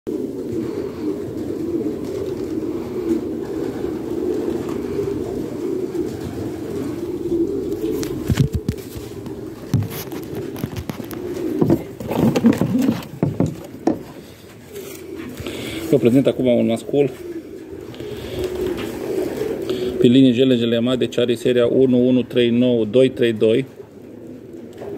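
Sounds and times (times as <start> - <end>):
pigeons cooing: 0.1 - 24.9
rustling handling noise: 7.0 - 16.3.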